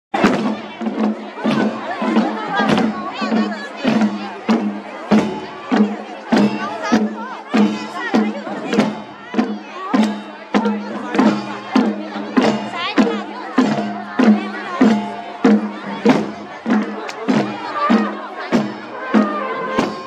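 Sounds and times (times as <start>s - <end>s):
drums in steady beat: 0.1s - 20.0s.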